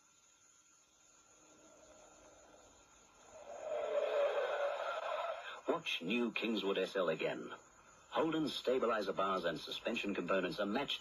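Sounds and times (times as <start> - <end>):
car tyre and engine noise: 1.2 - 6.4.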